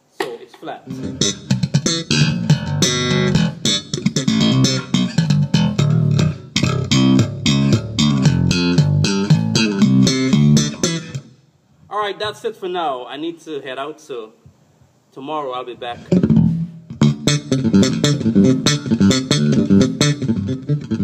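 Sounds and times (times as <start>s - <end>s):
electric bass guitar plucked notes: 0.9s - 11.4s, 16.0s - 21.0s.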